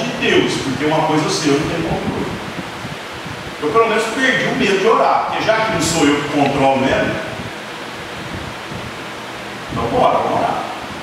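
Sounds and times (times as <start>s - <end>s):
steady background hiss: 0.0s - 11.0s
man speaking: 3.6s - 7.2s.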